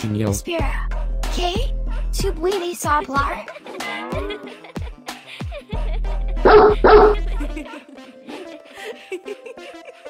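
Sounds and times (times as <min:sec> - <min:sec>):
background music with bass: 0:00.0 - 0:07.7
dog barking: 0:06.4 - 0:07.3.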